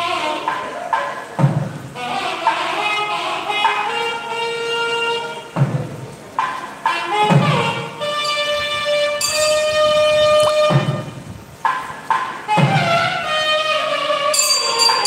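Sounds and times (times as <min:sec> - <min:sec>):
wind instrument long notes: 0:00.0 - 0:01.1, 0:01.8 - 0:11.7, 0:12.3 - 0:15.0
low drum strokes: 0:00.0 - 0:02.7, 0:05.4 - 0:13.9.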